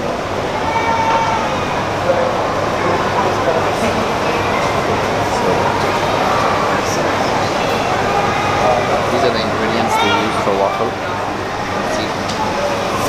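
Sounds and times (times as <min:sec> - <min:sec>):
busy place background noise: 0:00.0 - 0:13.0
indistinct voices talking: 0:00.0 - 0:13.0.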